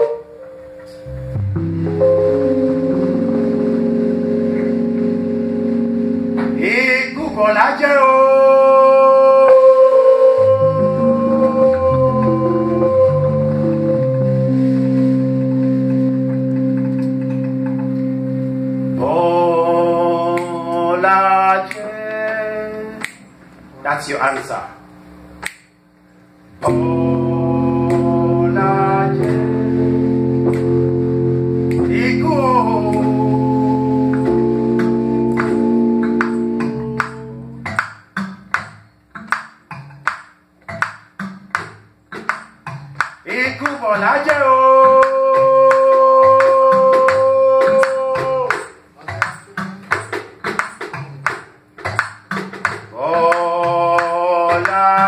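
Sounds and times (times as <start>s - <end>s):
sustained keyboard chords: 0.0s - 23.4s, 26.4s - 55.0s
plucked upright bass: 0.8s - 6.6s, 10.5s - 20.9s, 26.6s - 43.0s
ringing percussion strikes: 26.6s - 38.0s.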